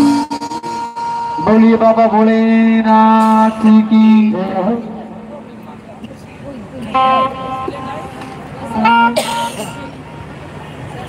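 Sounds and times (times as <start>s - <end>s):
crowd murmur: 0.0s - 11.0s
faint distant voices: 1.5s - 11.0s.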